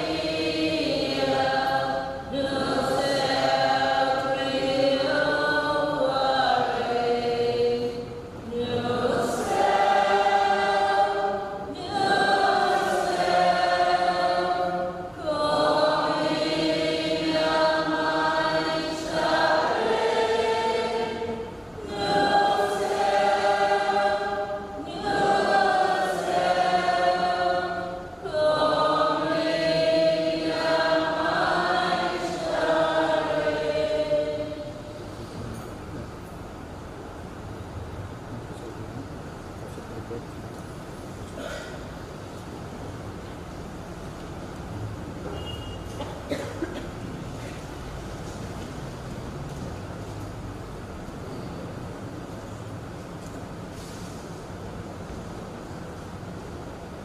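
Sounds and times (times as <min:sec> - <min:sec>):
group singing a slow hymn: 0:00.0 - 0:35.5.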